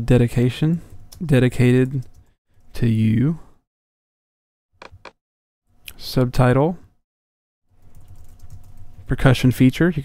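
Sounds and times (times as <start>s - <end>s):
typing on a computer keyboard: 7.8s - 8.8s.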